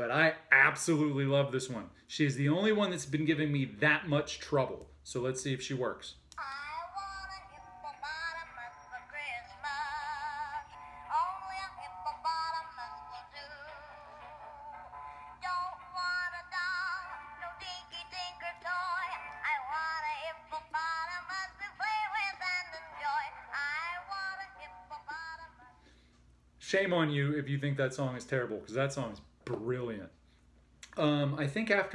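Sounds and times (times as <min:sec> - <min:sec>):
tinny song from toy speaker: 0:06.4 - 0:25.8.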